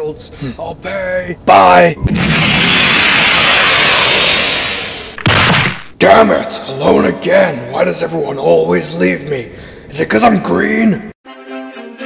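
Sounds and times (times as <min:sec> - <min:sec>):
rushing whoosh: 0:02.0 - 0:05.2.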